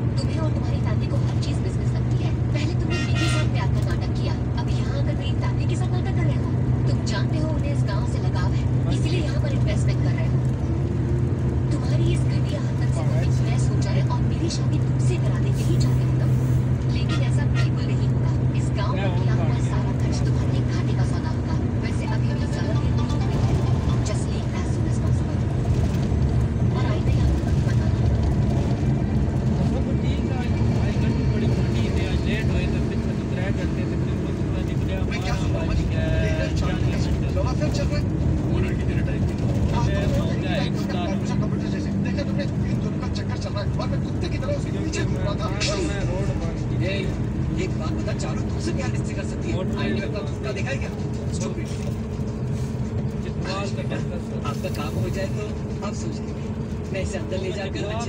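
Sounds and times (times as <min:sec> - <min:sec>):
voices: 0:00.0 - 0:10.4, 0:11.7 - 0:25.7, 0:26.6 - 0:28.4, 0:29.6 - 0:51.9
low engine drone: 0:00.0 - 0:58.0.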